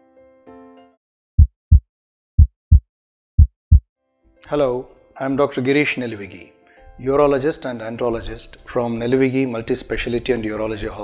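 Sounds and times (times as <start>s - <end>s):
heartbeat thumps: 1.4s - 1.8s, 2.4s - 2.8s, 3.4s - 3.8s.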